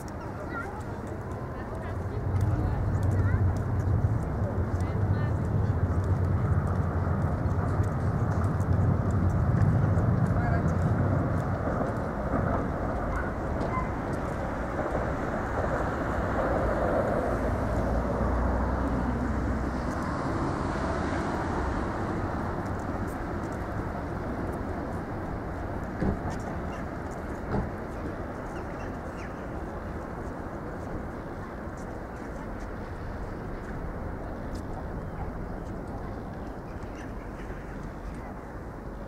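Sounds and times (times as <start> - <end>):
traffic rumble: 0.0 - 39.0.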